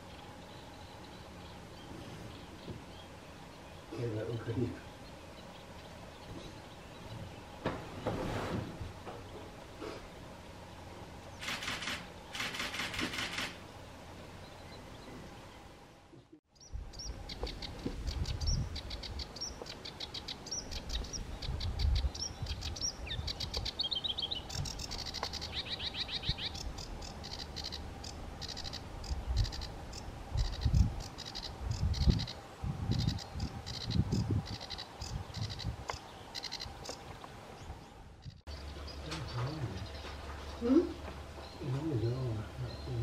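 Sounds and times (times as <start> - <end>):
warbler singing: 0.0 - 8.2, 13.6 - 15.7, 16.5 - 43.0.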